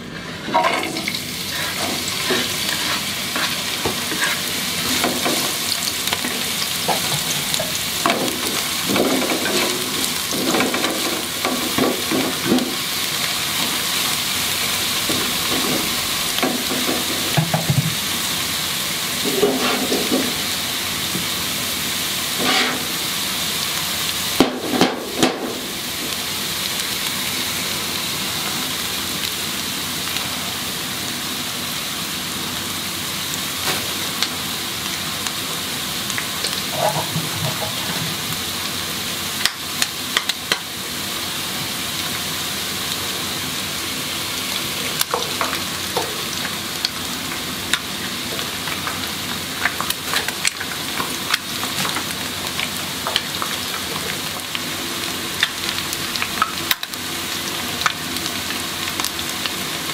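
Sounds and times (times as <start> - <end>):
wooden spatula scraping wok: 0.0 - 5.6, 19.2 - 20.4, 22.4 - 23.0, 36.6 - 38.2
onions sizzling in hot oil: 0.0 - 59.9.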